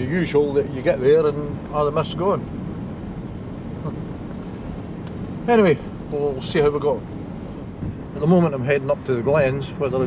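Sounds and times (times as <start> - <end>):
car engine cruising: 0.0 - 10.0
tyres on a wet road: 0.0 - 10.0.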